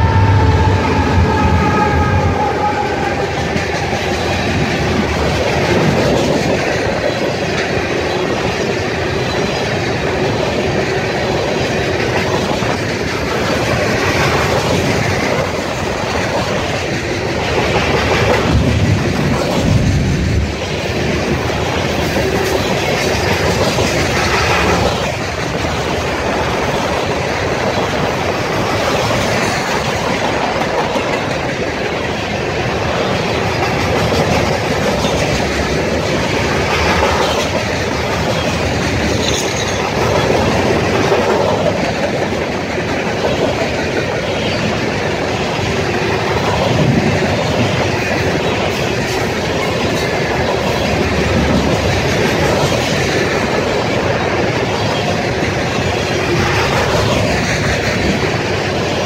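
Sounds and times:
clickety-clack over rail joints: 0.0 - 59.0
freight cars rolling on rails: 0.0 - 59.0.

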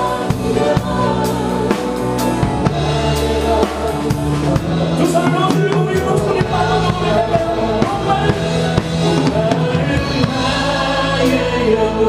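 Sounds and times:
many voices singing: 0.0 - 12.0
worship band playing: 0.0 - 12.0.

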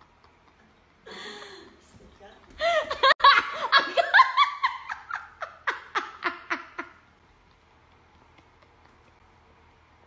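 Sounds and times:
woman laughing loudly: 2.6 - 7.1.

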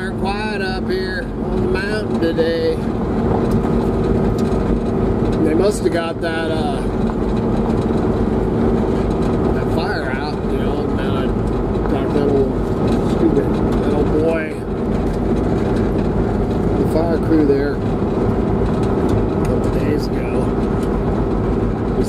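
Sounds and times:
vehicle engine and road drone: 0.0 - 22.0.

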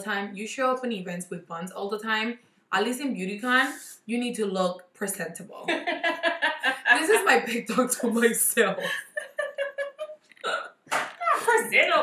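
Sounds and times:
woman laughing: 5.6 - 10.6.

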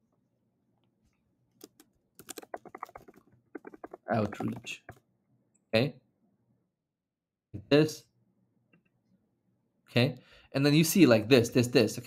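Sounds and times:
computer keyboard typing: 1.6 - 5.0.

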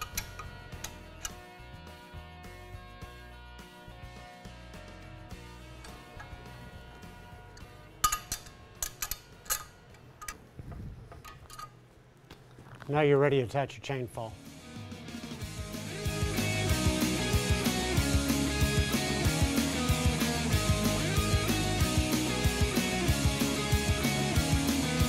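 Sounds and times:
background music with held tones: 0.0 - 12.2, 13.9 - 25.0
wrench clinking on steel nuts: 7.6 - 10.4, 11.1 - 11.8.

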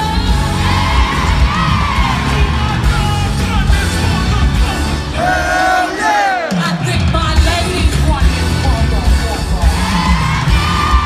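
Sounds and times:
concert bass beat: 0.0 - 5.6, 6.6 - 11.0
crowd yelling: 0.4 - 6.8, 9.6 - 11.0.

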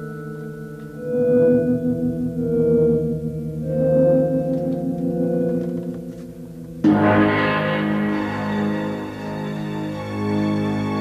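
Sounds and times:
sustained low music tones: 0.0 - 11.0
loud music chord hit: 6.8 - 11.0.

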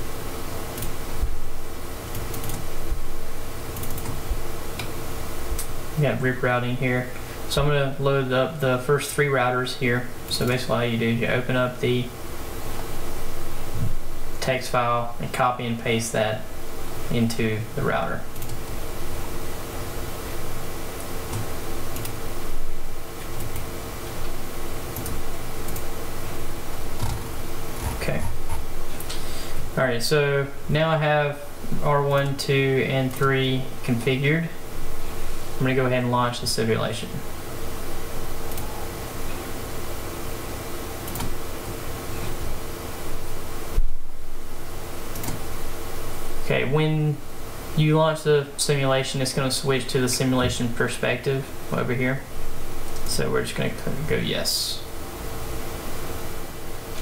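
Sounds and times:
background hiss: 0.0 - 57.0
low steady hum: 0.0 - 57.0
computer mouse clicks: 2.1 - 2.6, 3.8 - 4.2, 21.3 - 22.2, 25.0 - 25.9, 41.0 - 41.4, 45.1 - 45.4.

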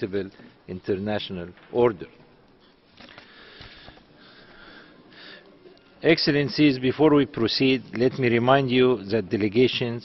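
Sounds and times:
microphone hiss and breath noise: 0.0 - 10.0.

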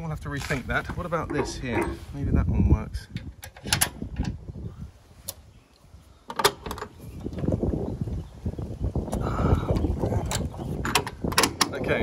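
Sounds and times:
metal pin rattling and scraping: 0.4 - 2.2, 10.0 - 11.9.

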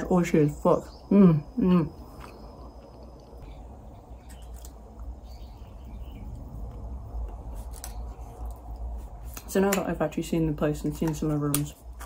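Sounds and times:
steady low rumble: 0.0 - 10.8.

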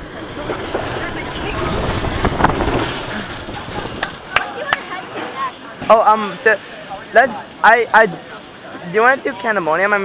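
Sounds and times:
roller coaster rolling on track: 0.0 - 10.0.

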